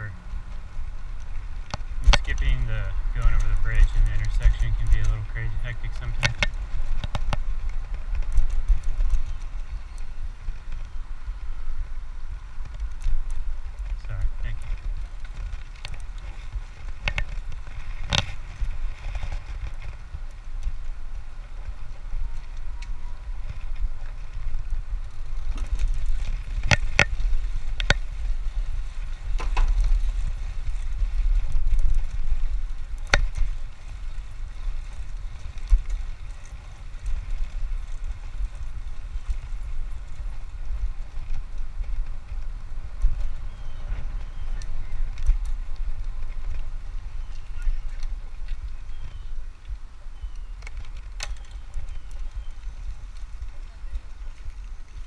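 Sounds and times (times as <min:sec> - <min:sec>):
bike rolling on pavement: 0:00.0 - 0:55.0
wind rumbling on microphone: 0:00.0 - 0:55.0
sharp clicks from bike: 0:00.4 - 0:55.0.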